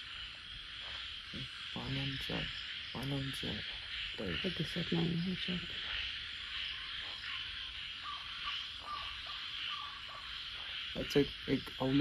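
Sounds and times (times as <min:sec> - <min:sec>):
night insects chorus: 0:00.0 - 0:12.0
owlet calling: 0:01.3 - 0:12.0.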